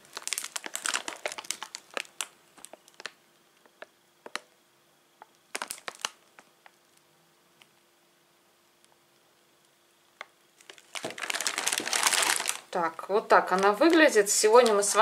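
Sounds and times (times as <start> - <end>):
plastic bag crinkling: 0.0 - 3.2, 5.5 - 6.7, 10.6 - 15.0.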